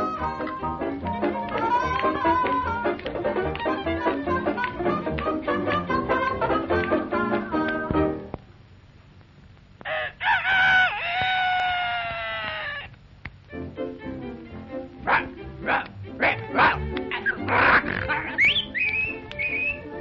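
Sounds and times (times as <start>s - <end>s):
music: 0.0s - 8.5s, 13.4s - 20.0s
cartoon lion crowing: 15.1s - 18.5s
cartoon sound effects: 16.6s - 18.9s.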